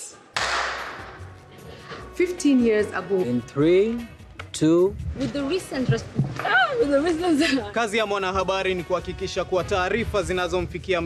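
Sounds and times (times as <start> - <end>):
background music: 0.0 - 11.0
crash-like hit: 0.4 - 1.2.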